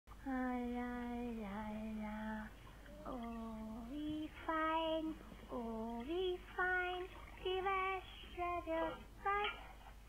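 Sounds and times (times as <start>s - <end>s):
child singing: 0.2s - 9.7s.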